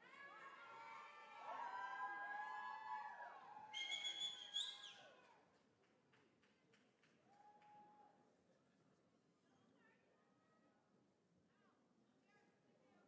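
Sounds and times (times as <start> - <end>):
audience cheering and whooping: 0.8 - 3.8
shrill high-pitched call: 3.8 - 5.0
faint claps: 5.1 - 8.1.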